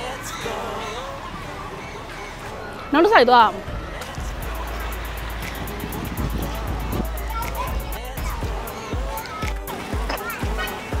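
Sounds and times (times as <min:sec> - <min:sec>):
street traffic rumble: 0:00.0 - 0:11.0
music with ticking beat: 0:03.7 - 0:11.0.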